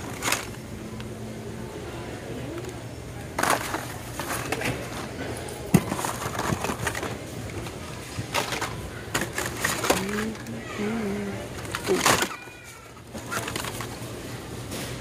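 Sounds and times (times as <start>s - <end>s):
plastic cards rustling and clacking: 0.0s - 0.7s, 2.6s - 10.6s, 11.5s - 15.0s
person humming: 10.0s - 11.5s.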